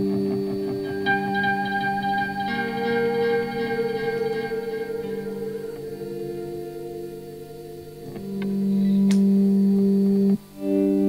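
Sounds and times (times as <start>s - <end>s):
acoustic guitar chords: 0.0s - 11.0s
electric guitar chords: 0.0s - 11.0s.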